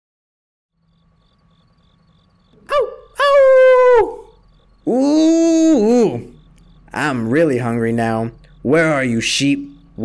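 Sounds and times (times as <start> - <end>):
wolf yelp: 2.6 - 4.4
wolf howl: 2.6 - 5.9.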